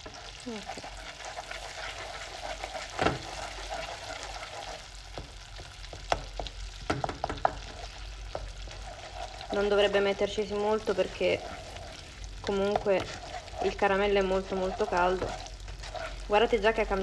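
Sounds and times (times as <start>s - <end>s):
sugar sizzling and bubbling: 0.0s - 17.0s
wooden spoon knocking against pan: 5.9s - 8.6s.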